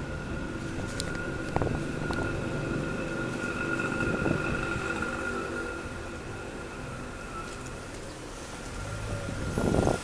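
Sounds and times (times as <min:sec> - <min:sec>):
high whine: 0:00.0 - 0:10.0
vehicle motor rumbling: 0:00.0 - 0:10.0.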